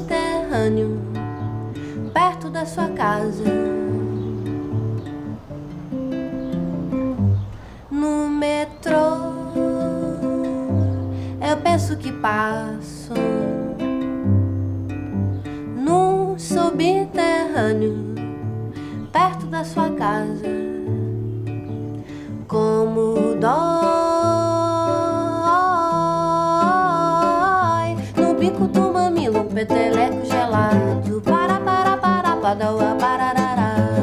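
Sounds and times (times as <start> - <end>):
person singing: 0.0 - 4.4, 7.8 - 14.2, 15.6 - 21.0, 22.2 - 34.0
guitar: 0.0 - 34.0.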